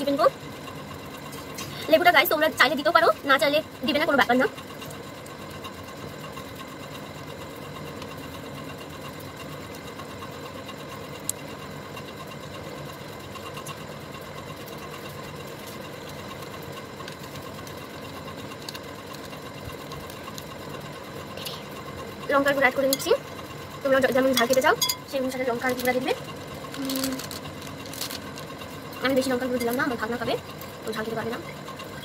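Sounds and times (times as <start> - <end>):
small motor humming: 0.0 - 32.0.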